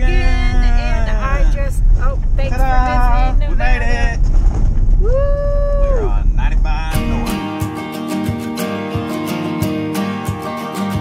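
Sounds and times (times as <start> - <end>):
low road rumble: 0.0 - 7.4
person singing and whooping: 5.0 - 6.1.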